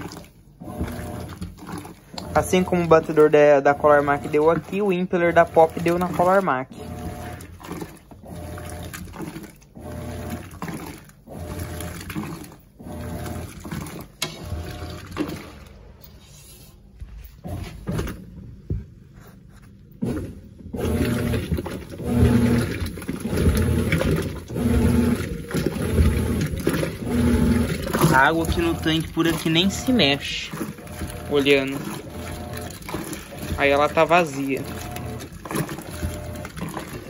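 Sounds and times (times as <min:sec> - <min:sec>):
water churning and sloshing: 0:00.0 - 0:18.4, 0:19.4 - 0:37.0
washing machine motor hum: 0:00.0 - 0:37.0.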